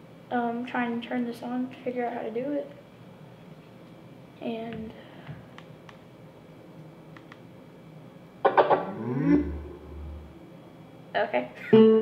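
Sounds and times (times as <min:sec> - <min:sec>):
speaker start-up riff: 0:08.5 - 0:10.4.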